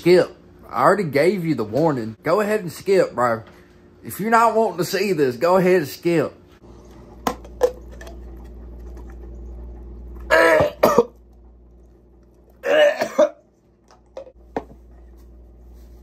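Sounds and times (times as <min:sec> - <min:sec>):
man gagging and retching: 0:10.2 - 0:11.3, 0:12.6 - 0:13.5.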